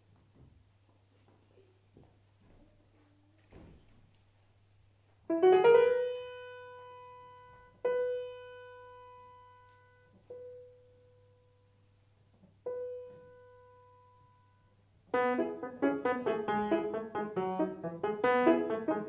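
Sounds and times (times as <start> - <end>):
grand piano played slowly: 5.2 - 12.0, 12.6 - 19.0.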